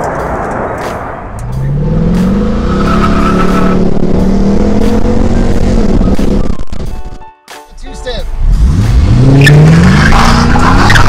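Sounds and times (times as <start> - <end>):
car engine accelerating: 0.0 - 6.9, 8.3 - 11.0.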